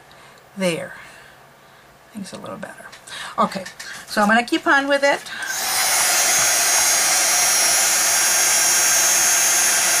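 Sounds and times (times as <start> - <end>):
fan motor whine: 5.3 - 10.0
heat gun blowing air: 5.4 - 10.0.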